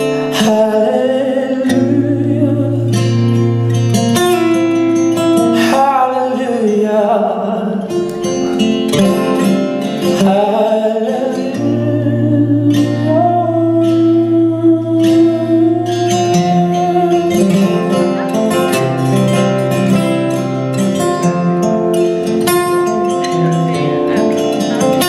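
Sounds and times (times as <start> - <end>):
man singing blues: 0.0 - 21.1
strummed acoustic guitar: 0.0 - 25.0.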